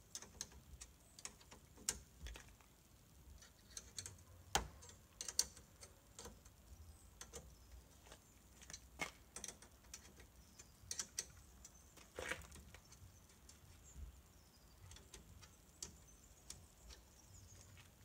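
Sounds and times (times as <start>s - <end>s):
metal fittings clicking and tapping: 3.4s - 7.8s, 8.6s - 13.7s, 14.8s - 18.0s.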